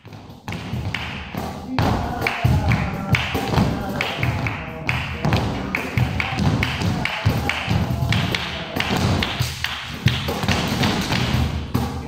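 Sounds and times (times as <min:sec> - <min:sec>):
music: 0:00.0 - 0:12.0.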